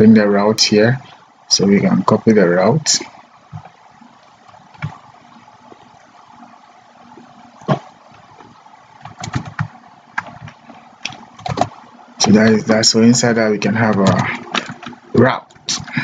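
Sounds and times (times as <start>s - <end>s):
faint background hiss: 0.0s - 16.0s
keyboard and mouse clicks: 4.5s - 5.0s, 7.6s - 12.6s, 13.9s - 16.0s.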